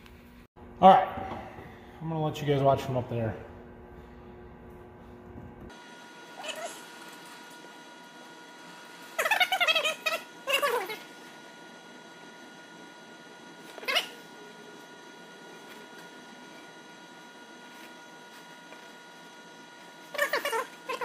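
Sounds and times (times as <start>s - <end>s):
faint steady hum: 0.0s - 21.0s.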